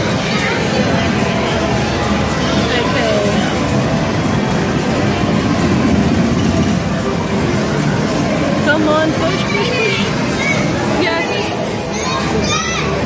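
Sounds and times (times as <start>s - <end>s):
arcade machine noise: 0.0s - 13.0s.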